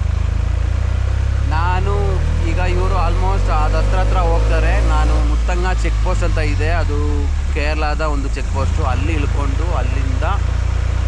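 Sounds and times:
road and wind noise: 0.0 - 11.0
truck engine droning: 0.0 - 11.0
person talking: 1.4 - 10.4.

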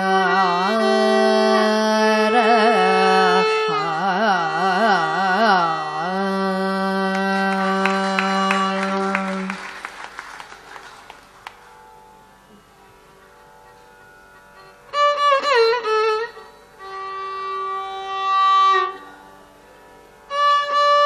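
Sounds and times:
woman singing ornamented phrases: 0.0 - 9.6.

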